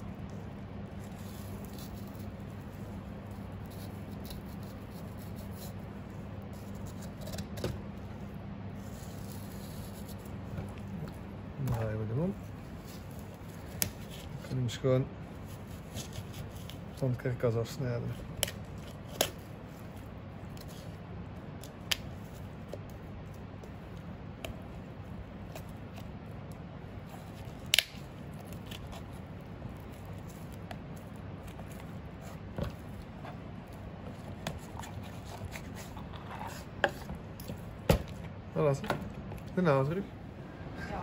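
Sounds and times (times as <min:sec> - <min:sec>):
steady background noise: 0:00.0 - 0:41.0.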